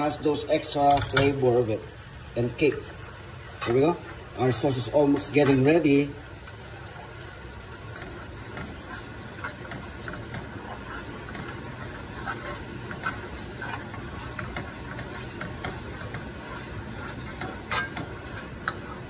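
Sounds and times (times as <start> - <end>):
spoon stirring sauce: 3.7 - 19.0
sauce simmering with bubbling pops: 5.1 - 19.0.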